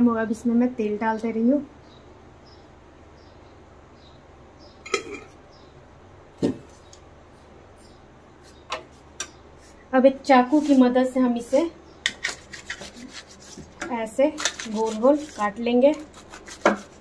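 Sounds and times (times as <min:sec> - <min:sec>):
background hum: 0:00.0 - 0:17.0
kitchenware knocks and clicks: 0:04.9 - 0:05.3.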